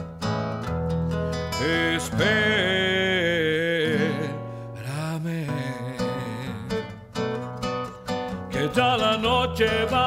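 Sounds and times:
classical guitar strummed chords: 0.0 - 10.0.

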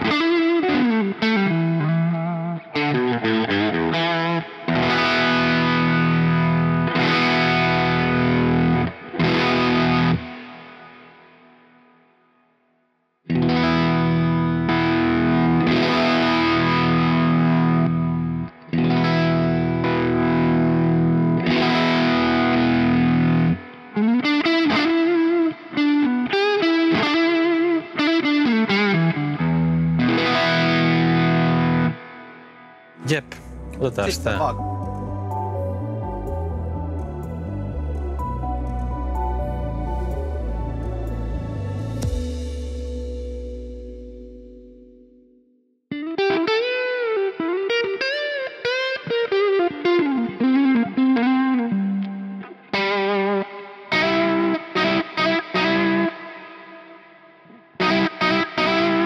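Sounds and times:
distorted electric guitar chords: 0.0 - 11.7, 13.3 - 25.4, 33.0 - 56.6, 57.8 - 59.0.

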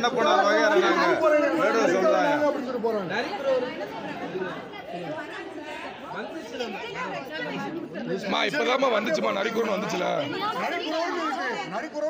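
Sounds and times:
crowd of overlapping voices: 0.0 - 12.0.

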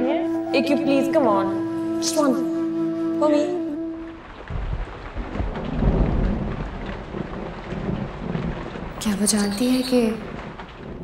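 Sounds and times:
heavy rain falling: 0.0 - 11.0
thunder rumbling: 0.0 - 11.0.

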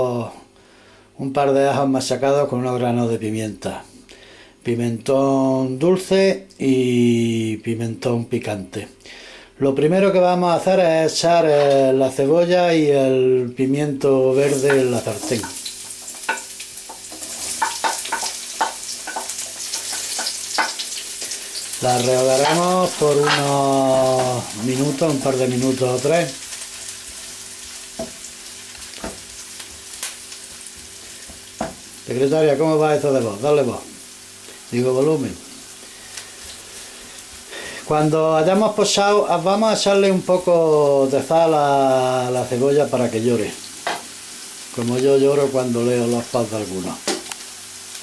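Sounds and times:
vegetables sizzling in hot oil: 14.3 - 48.0.

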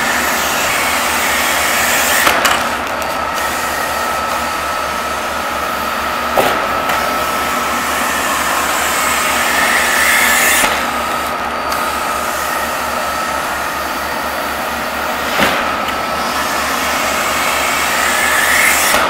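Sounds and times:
suction air hissing: 16.2 - 19.0.

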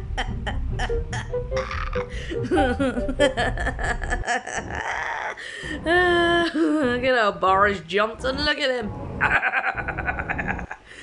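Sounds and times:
background music: 0.0 - 4.8
person laughing: 0.0 - 5.4, 9.2 - 10.9.

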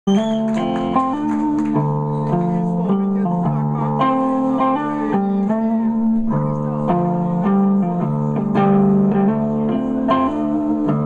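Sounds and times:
electric guitar chords: 0.1 - 11.0
rock band playing loud: 0.1 - 11.0.

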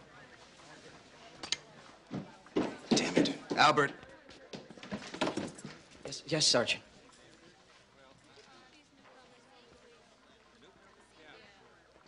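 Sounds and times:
man speaking: 6.1 - 6.8.

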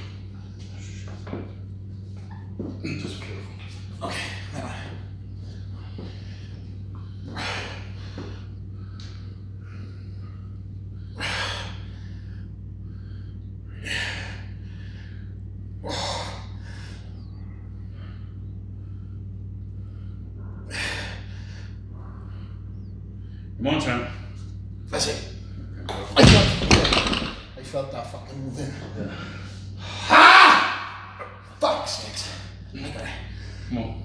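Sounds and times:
low hum: 0.0 - 34.0.

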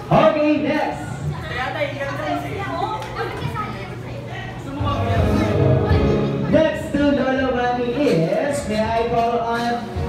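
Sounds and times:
party chatter: 0.0 - 10.0
children's voices: 1.1 - 4.6.

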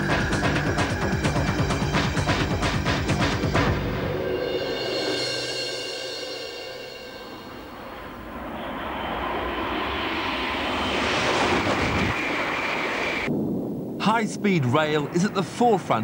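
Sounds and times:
electric train rushing past: 0.0 - 13.3
ringing chord of title music: 1.4 - 7.9.

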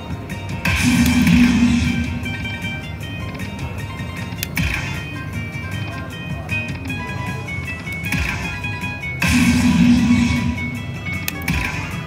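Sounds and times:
slot machine bonus music: 0.0 - 12.0
slot machine chimes: 0.1 - 12.0.

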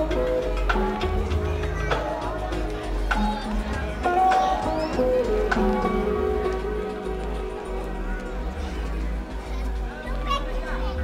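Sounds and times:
dj music over loudspeakers: 0.0 - 11.0.

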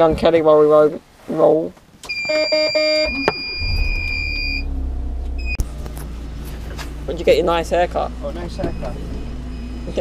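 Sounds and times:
car warning chime beeping: 2.0 - 4.8, 5.4 - 5.6, 8.4 - 10.0
car engine starting and idling: 2.0 - 10.0.

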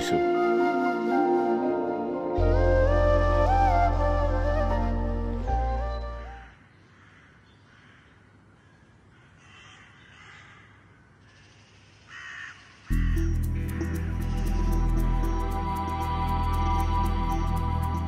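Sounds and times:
background music: 0.0 - 6.5, 12.9 - 18.0
crows cawing: 6.8 - 14.7
music with a beat: 12.9 - 18.0.

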